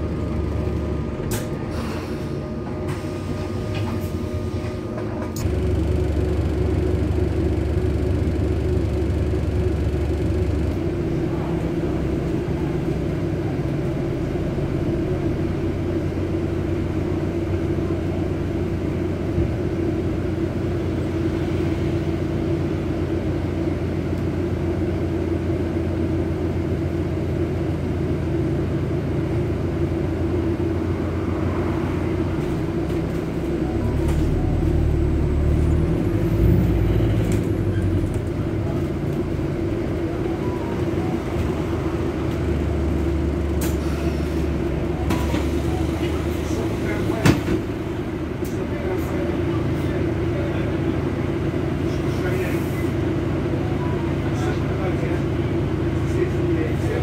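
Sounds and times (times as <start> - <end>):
bus engine drone: 0.0 - 57.0
road noise: 0.0 - 57.0.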